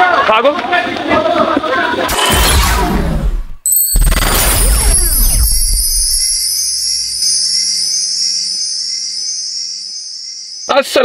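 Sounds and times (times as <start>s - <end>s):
high-pitched shimmering whine: 3.7s - 11.0s.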